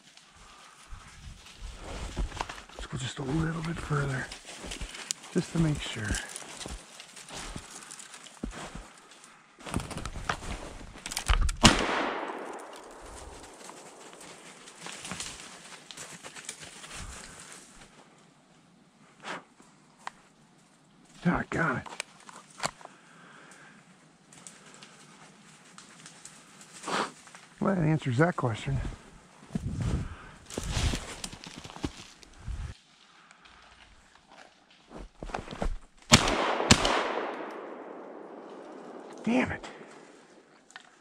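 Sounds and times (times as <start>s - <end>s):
footsteps through snowy brush: 0.0s - 11.2s, 12.4s - 18.0s, 28.6s - 36.2s
shotgun shot with echo: 11.6s - 13.6s, 36.1s - 39.1s.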